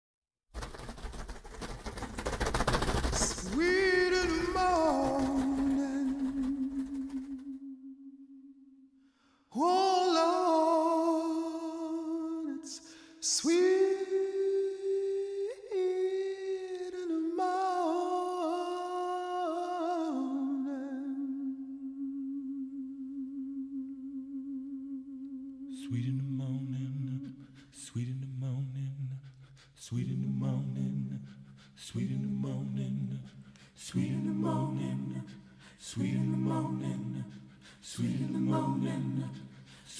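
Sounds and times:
dense crackle of clicks: 0.6 - 7.0.

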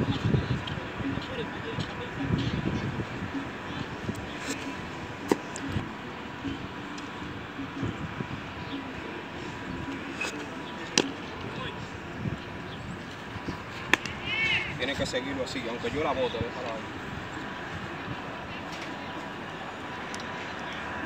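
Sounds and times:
faint background voices: 0.0 - 21.0
baseball smacking into glove: 13.9 - 14.1.

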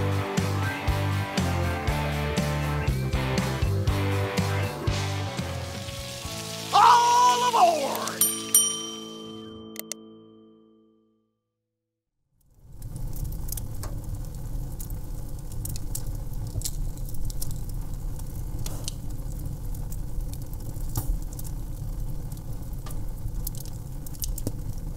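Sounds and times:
fire crackles and pops: 4.7 - 8.2, 12.3 - 24.9
rumble of fire flames: 12.4 - 24.9.

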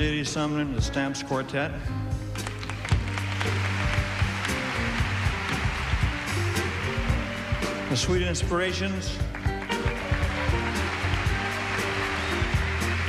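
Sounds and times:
audience applauding: 2.4 - 13.0
band playing instrumental vamp: 2.8 - 13.0.

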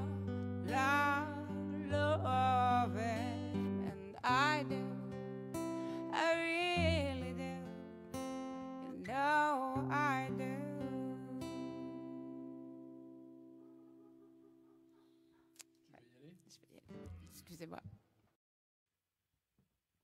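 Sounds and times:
woman singing: 0.0 - 7.9, 8.7 - 12.6
strummed acoustic guitar: 0.0 - 14.9.

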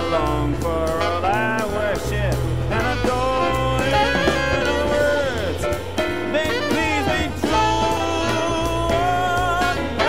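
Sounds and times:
bass line: 0.0 - 10.0
cymbals: 0.0 - 10.0
saxophone melody: 0.0 - 10.0.

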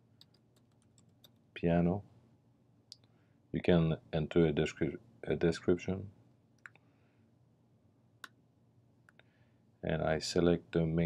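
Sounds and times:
computer mouse clicks: 0.2 - 1.4.

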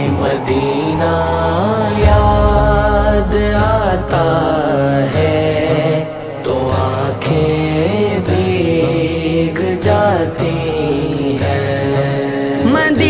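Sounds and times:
low sustained drone: 0.0 - 6.4
layered voices chanting: 0.0 - 12.7.

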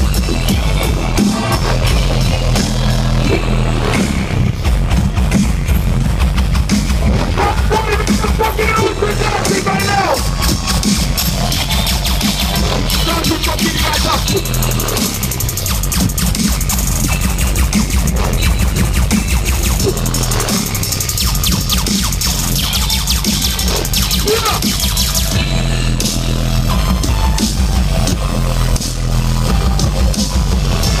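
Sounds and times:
dubstep music with heavy bass: 0.0 - 31.0.

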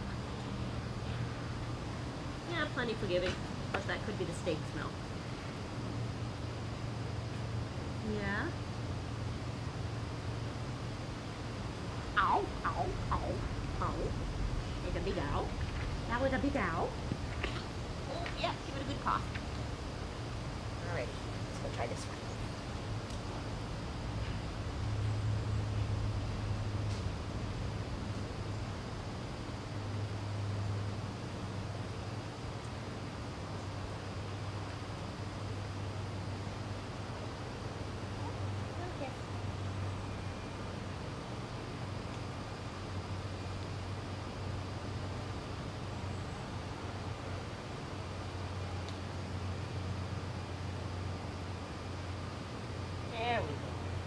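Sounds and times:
low mechanical hum: 0.0 - 54.0.

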